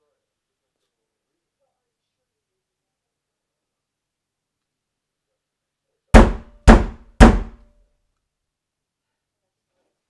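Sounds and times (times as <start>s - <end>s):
loud knocks on hard surface: 6.2s - 7.6s.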